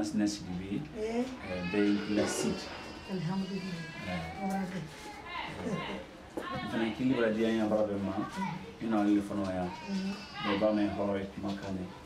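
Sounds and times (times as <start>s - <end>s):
man and woman talking: 0.0s - 12.0s.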